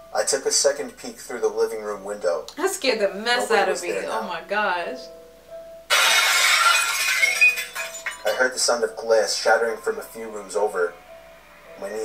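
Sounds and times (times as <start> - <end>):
soft background music: 0.0 - 12.0
glass shards tinkling: 5.9 - 8.6
glass shattering: 5.9 - 8.8.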